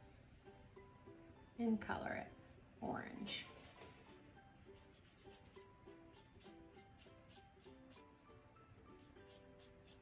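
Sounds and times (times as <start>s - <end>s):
quiet background guitar music: 0.0s - 10.0s
marker scratching on toothpick: 2.3s - 2.6s, 4.6s - 10.0s.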